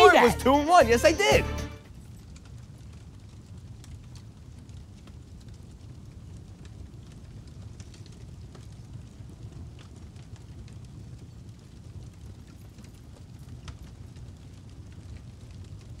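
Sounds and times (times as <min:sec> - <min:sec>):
fire crackling: 0:00.0 - 0:16.0
fire rumbling: 0:00.0 - 0:16.0.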